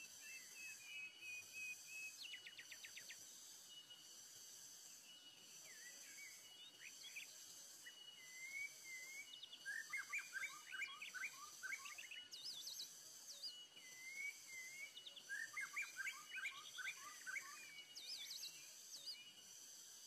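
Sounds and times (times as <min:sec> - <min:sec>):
songbird singing: 0:00.0 - 0:19.6
high insect drone: 0:00.0 - 0:20.0.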